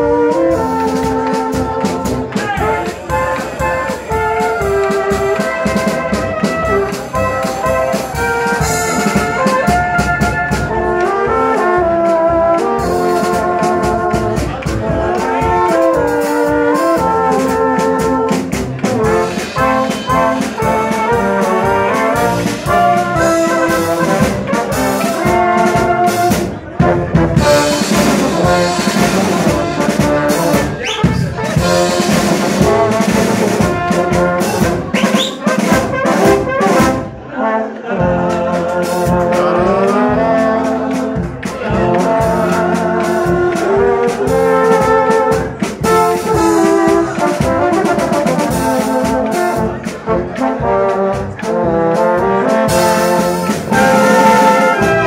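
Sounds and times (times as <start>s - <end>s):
brass band melody: 0.0s - 55.0s
drum and cymbal hits: 0.3s - 37.2s, 38.3s - 55.0s.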